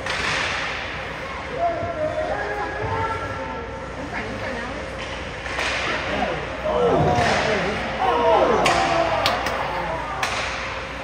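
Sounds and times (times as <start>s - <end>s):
hockey stick crack: 0.0s - 0.9s, 5.0s - 6.1s, 10.2s - 10.9s.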